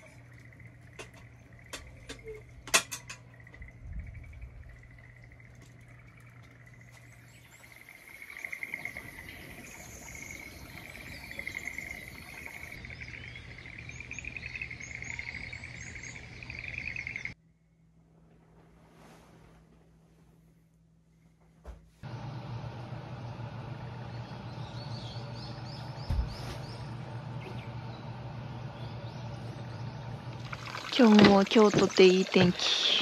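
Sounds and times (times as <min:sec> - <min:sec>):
birds singing: 0:03.2 - 0:17.4, 0:23.3 - 0:33.0.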